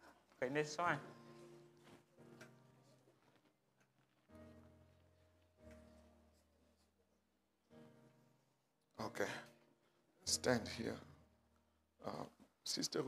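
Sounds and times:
soft low background music: 0.0s - 13.0s.

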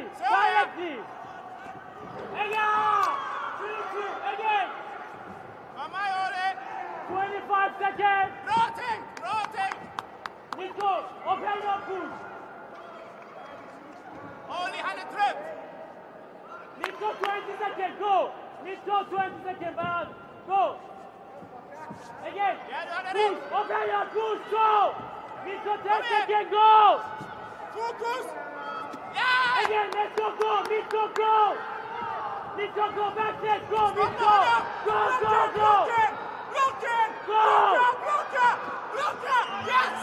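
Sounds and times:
people shouting in echoing hall: 0.0s - 9.8s, 10.6s - 13.2s, 14.1s - 40.0s
arena background noise: 0.0s - 40.0s.

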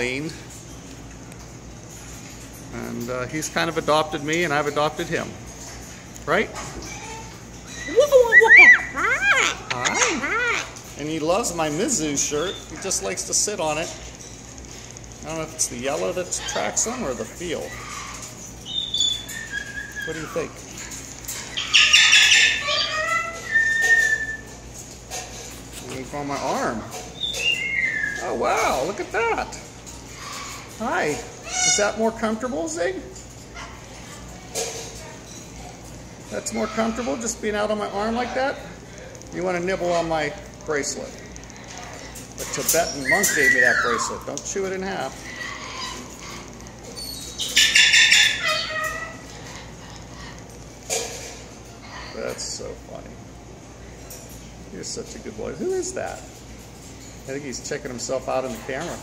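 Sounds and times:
bird harsh squawk: 7.1s - 10.8s, 21.5s - 24.5s, 47.0s - 50.3s
bird whistled notes: 23.4s - 24.5s.

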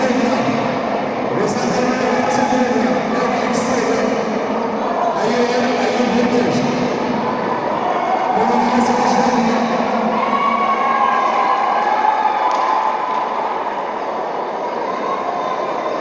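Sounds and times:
crowd shouting and cheering: 0.0s - 16.0s
long high held shout: 10.0s - 13.8s.

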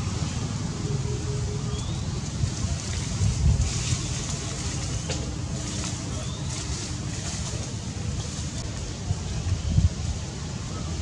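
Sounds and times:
wind buffeting microphone: 1.8s - 11.0s.

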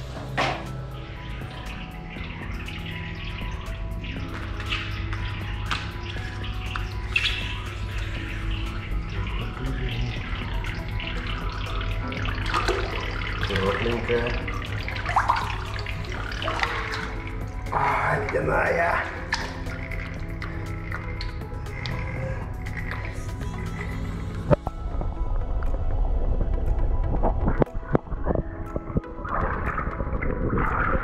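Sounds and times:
water running and splashing: 0.0s - 24.6s
steady low hum: 0.0s - 29.1s
background music: 0.0s - 31.0s.

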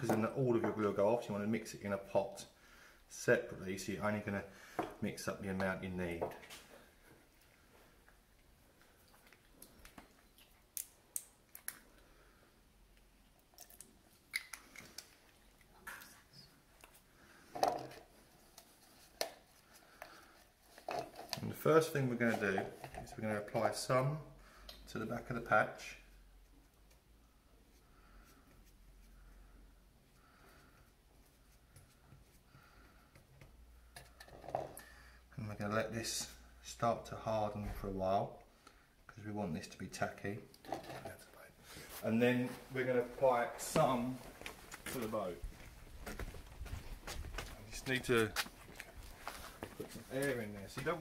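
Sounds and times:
small clicks from handling containers: 7.4s - 12.1s, 12.9s - 21.5s, 24.6s - 24.9s.

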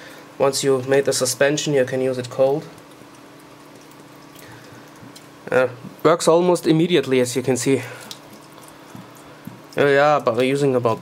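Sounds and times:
liquid trickling into tub: 1.8s - 6.2s, 6.9s - 11.0s.

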